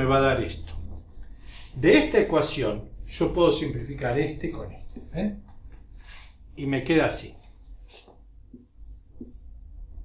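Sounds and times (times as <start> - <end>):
marker squeaking on whiteboard: 8.0 - 9.6.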